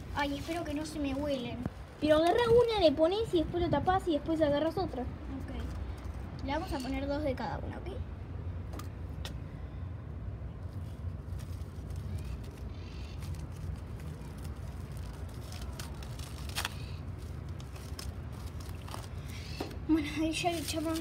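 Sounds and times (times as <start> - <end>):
plastic bowls and wrap rustling: 0.0 - 2.8, 10.7 - 21.0
low background rumble: 0.0 - 21.0.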